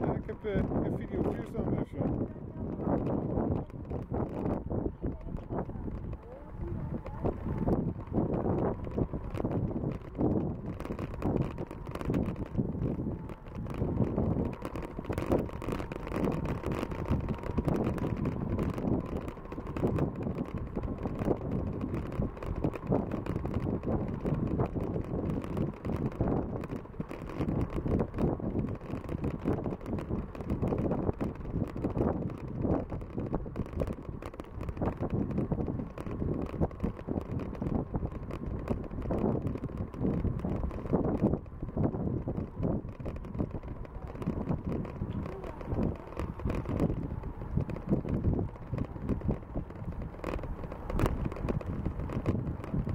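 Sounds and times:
bicycle rolling noise: 0.0 - 52.9
wind buffeting microphone: 0.0 - 52.9.

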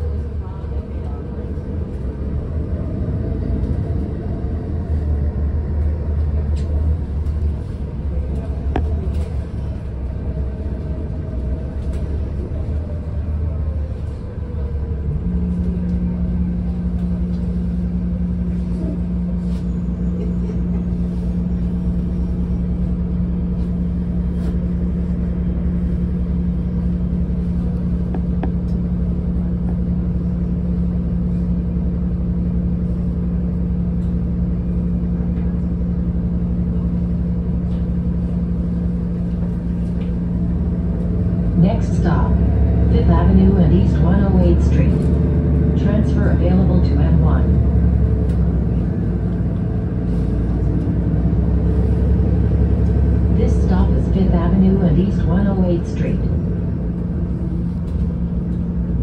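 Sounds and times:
bus engine and road rumble: 0.0 - 59.0
steady low hum: 0.0 - 59.0.

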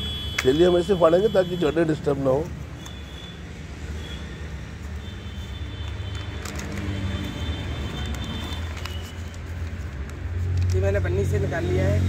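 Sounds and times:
vehicle engine rumbling: 0.0 - 12.0
plastic bag crinkling: 5.9 - 10.8.

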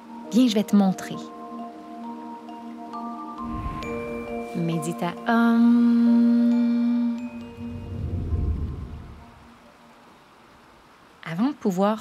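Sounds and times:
sung om: 3.3 - 10.0
low rumbling whoosh: 3.4 - 4.4, 7.2 - 9.6
high chime: 3.4 - 5.2, 6.5 - 9.0.

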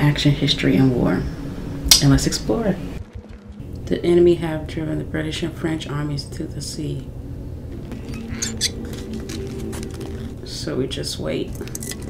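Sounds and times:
low soundtrack drone: 0.0 - 12.0.

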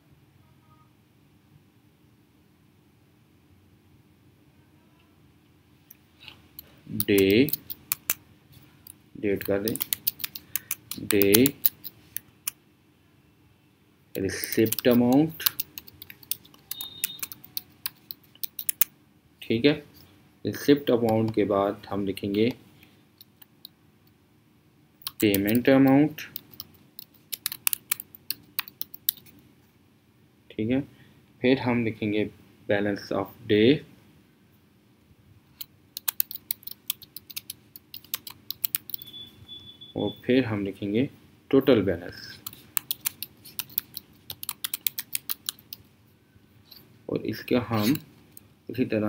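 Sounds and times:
keyboard key clicks: 7.0 - 8.2, 9.4 - 11.9, 14.4 - 18.9, 25.0 - 25.6, 26.3 - 29.2, 36.0 - 39.0, 42.5 - 45.8.

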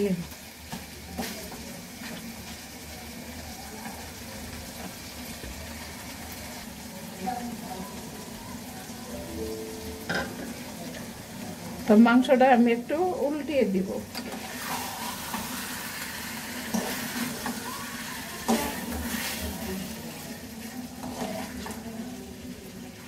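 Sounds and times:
meat sizzling in a pan: 0.0 - 23.0.

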